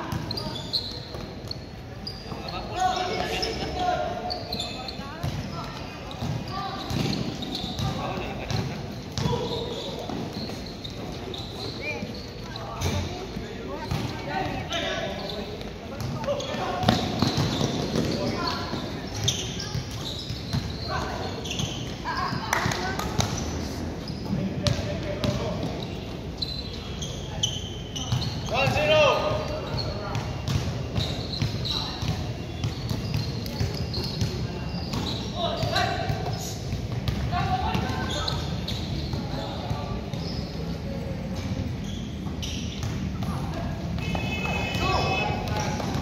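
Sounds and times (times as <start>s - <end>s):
basketballs bouncing: 5.1s - 23.6s, 24.2s - 26.4s, 28.0s - 40.7s, 41.6s - 46.0s.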